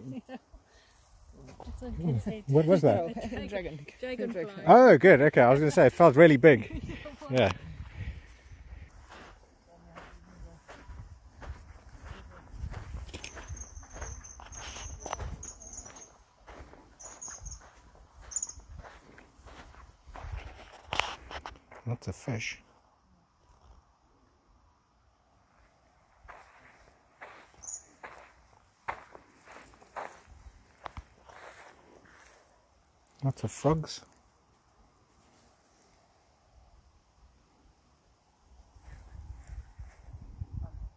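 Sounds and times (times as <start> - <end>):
footsteps on sand and dry grass: 0.9 - 21.9, 25.5 - 34.2, 38.7 - 40.4
short high chirps: 13.2 - 16.2, 17.0 - 18.8, 27.6 - 27.9.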